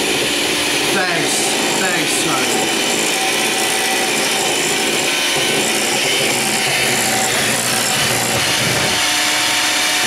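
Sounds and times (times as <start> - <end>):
electric hand mixer whirring: 0.0 - 10.0.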